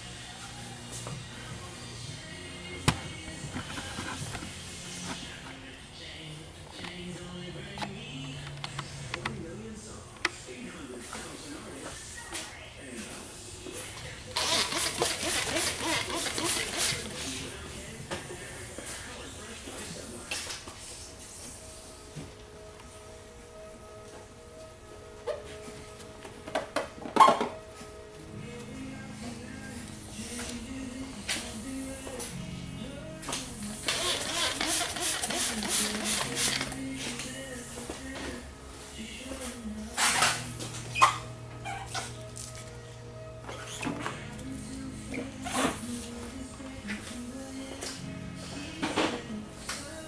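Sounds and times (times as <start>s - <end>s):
background music: 0.0s - 50.0s
spray bottle squirting: 14.4s - 17.0s, 33.8s - 36.8s
spray bottle hissing: 33.9s - 36.6s.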